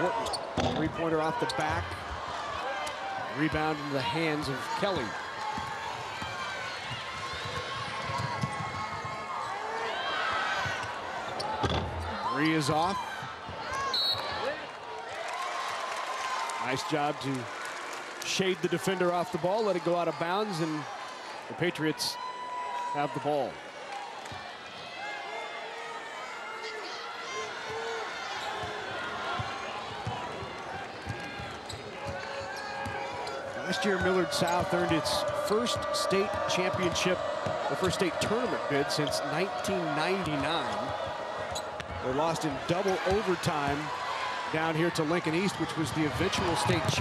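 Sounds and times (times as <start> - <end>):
arena crowd chatter: 0.0 - 47.0
sneakers squeaking: 0.1 - 0.8, 31.0 - 35.4.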